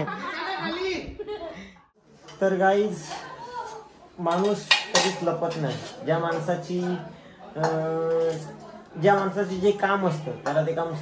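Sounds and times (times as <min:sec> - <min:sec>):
kitchenware clinking: 0:02.2 - 0:07.0, 0:07.6 - 0:11.0.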